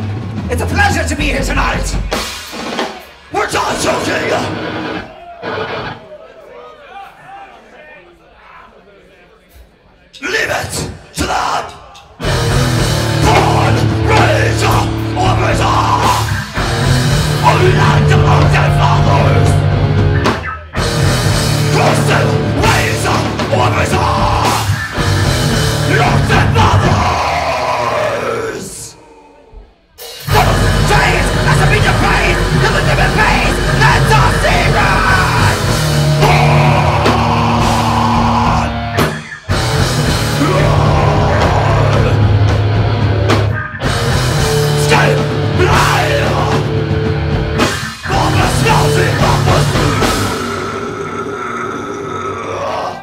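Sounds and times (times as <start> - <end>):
live metal band playing: 0.0 - 6.0, 12.2 - 28.7, 30.0 - 53.0
drums: 0.0 - 6.2, 9.5 - 53.0
distorted guitar and bass: 3.7 - 6.0, 12.2 - 28.2, 30.3 - 52.8
guttural growled vocal: 49.2 - 53.0.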